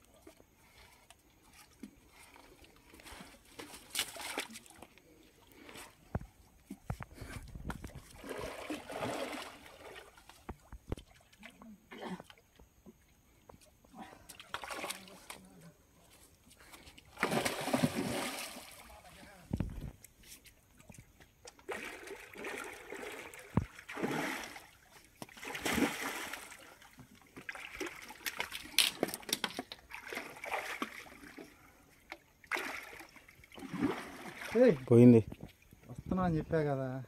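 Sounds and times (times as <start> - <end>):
person wading in water: 0.0 - 12.6, 13.3 - 19.6, 20.7 - 35.0
fish thrashing in water: 7.5 - 10.4, 17.0 - 19.0, 21.6 - 31.6, 32.4 - 34.9
fish splashing at water surface: 17.1 - 19.0.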